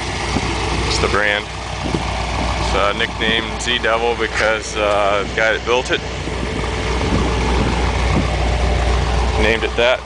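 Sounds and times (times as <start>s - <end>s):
engine idling rumble: 0.0s - 10.0s.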